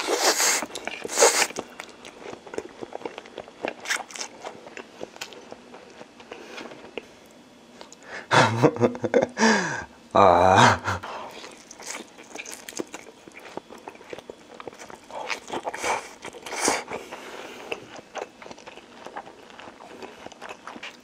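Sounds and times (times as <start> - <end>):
person chewing noodles: 0.0 - 8.0, 11.1 - 21.0.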